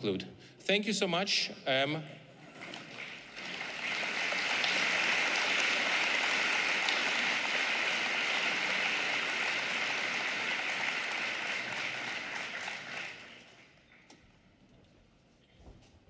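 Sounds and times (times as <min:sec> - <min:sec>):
audience applauding: 0:02.5 - 0:14.0.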